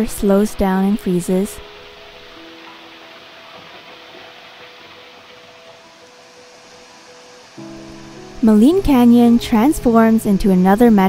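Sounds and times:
running water rushing: 0:00.0 - 0:11.0
soft background music: 0:00.0 - 0:11.0.

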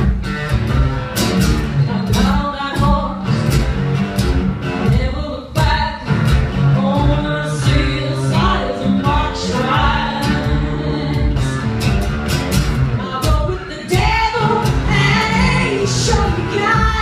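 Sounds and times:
strummed guitars: 0:00.0 - 0:17.0
woman singing: 0:01.7 - 0:03.5, 0:04.8 - 0:11.8, 0:13.0 - 0:17.0.

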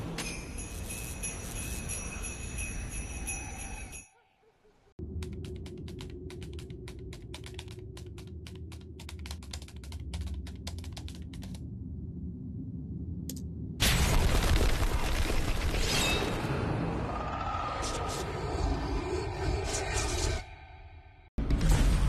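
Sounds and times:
sleigh bells jingling: 0:00.2 - 0:04.2
typewriter keys clacking: 0:05.2 - 0:11.6.

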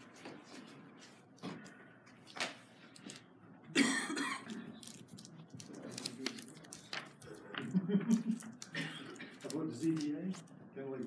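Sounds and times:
woman coughing: 0:03.7 - 0:04.6, 0:08.7 - 0:09.4.

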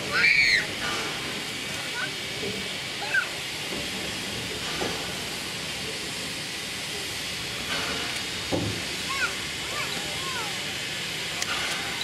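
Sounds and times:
steam locomotive hissing: 0:00.0 - 0:12.0.

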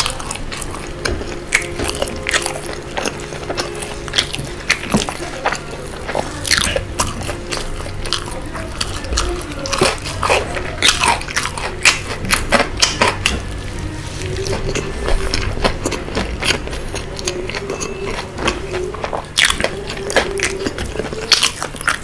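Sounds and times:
chewing and crunching fried chicken: 0:00.0 - 0:22.0.

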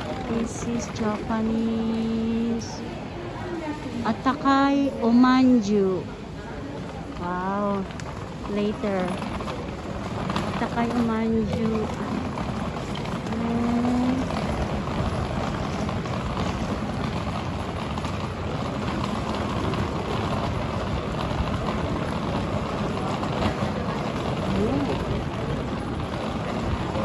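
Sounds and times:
murmur of passers-by: 0:00.0 - 0:27.0.

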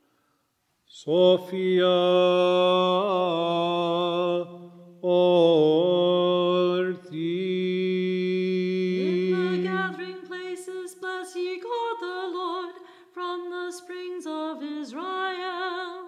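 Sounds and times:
liturgical chant in long notes: 0:00.9 - 0:12.3.

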